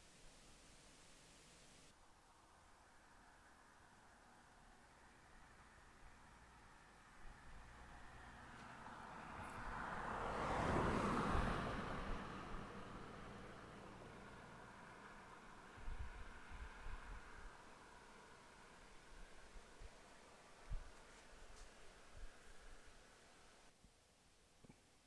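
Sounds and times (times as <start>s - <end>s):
vehicle passing by: 4.9s - 23.4s.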